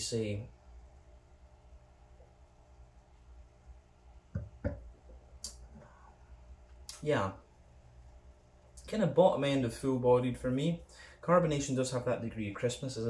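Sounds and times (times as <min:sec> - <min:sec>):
glass set down on table: 0:04.3 - 0:04.9.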